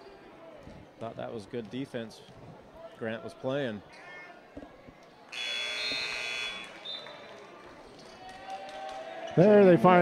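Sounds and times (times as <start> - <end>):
scoreboard buzzer: 5.4 - 6.7.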